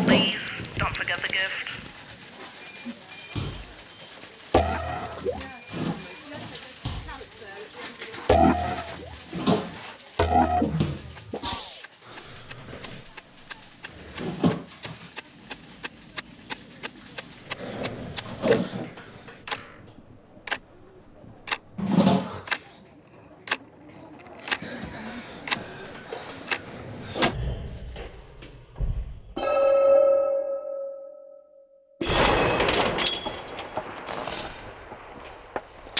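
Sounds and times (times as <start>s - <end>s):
sharp clicks and knocks: 8.3s - 20.6s, 21.4s - 22.7s.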